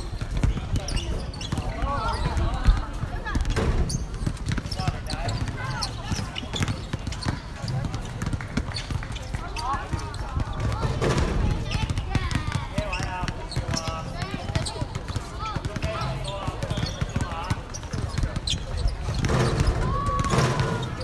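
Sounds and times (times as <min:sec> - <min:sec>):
basketball bouncing: 0:00.1 - 0:21.0.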